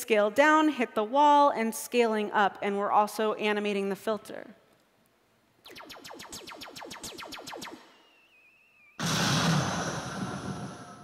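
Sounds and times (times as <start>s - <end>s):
falling-pitch electronic blips: 5.6s - 11.0s
faint wavering high whistle: 5.7s - 9.0s
loud explosion-like noise burst: 9.0s - 11.0s.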